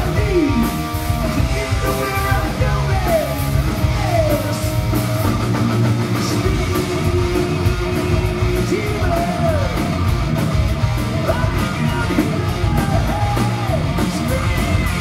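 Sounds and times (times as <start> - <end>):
singer yelling and singing: 0.0 - 10.2, 11.0 - 15.0
live hard rock band: 0.0 - 15.0.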